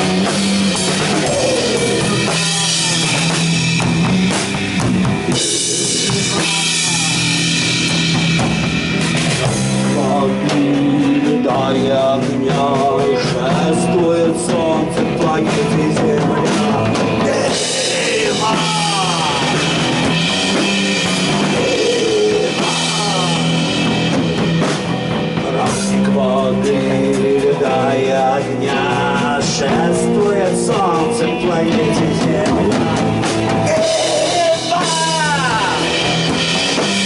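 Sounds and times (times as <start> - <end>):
bass guitar: 0.0 - 37.0
distorted electric guitars: 0.0 - 37.0
drum kit with cymbals: 0.0 - 37.0.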